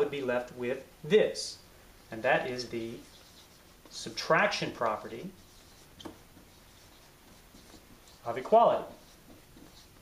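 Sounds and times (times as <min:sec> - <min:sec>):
marker scratching on whiteboard: 0:02.4 - 0:10.0.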